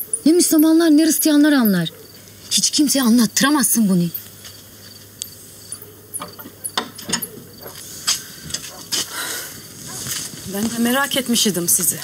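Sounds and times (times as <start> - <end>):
footsteps: 6.4 - 12.0.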